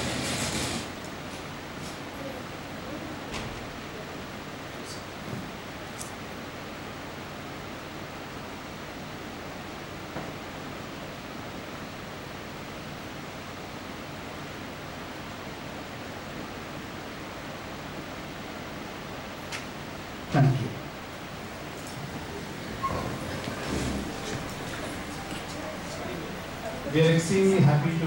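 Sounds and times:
room tone hiss: 0.0s - 28.0s.

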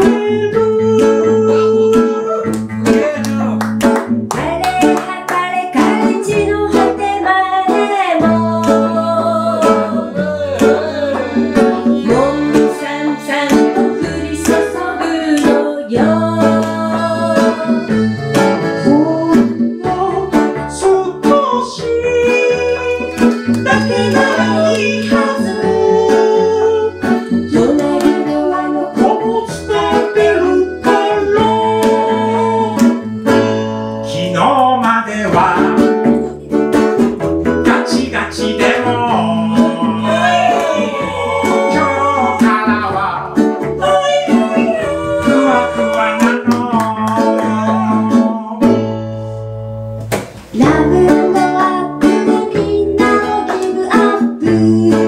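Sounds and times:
sung vocals: 0.0s - 3.6s, 4.3s - 36.8s, 37.5s - 49.1s, 50.5s - 55.0s
drum kit beat: 0.0s - 33.7s, 34.5s - 49.0s, 50.0s - 55.0s
accordion: 0.0s - 50.0s
strummed ukulele and guitars: 0.0s - 55.0s.

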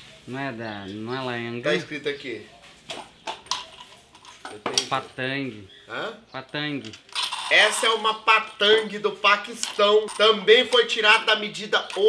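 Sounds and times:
person speaking: 4.6s - 12.0s.

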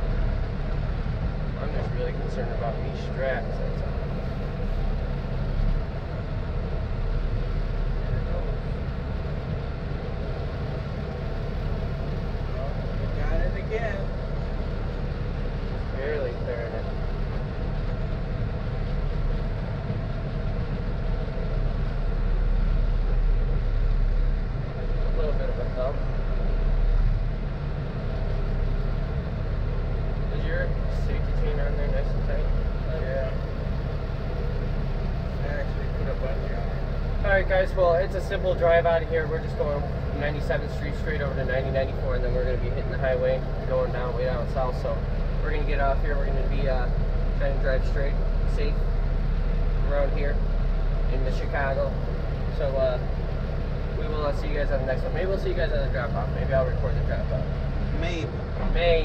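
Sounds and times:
diesel truck engine droning: 0.0s - 59.0s.

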